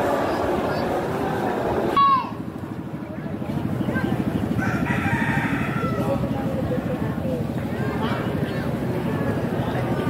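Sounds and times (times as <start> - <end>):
rooster crowing: 4.6 - 6.2.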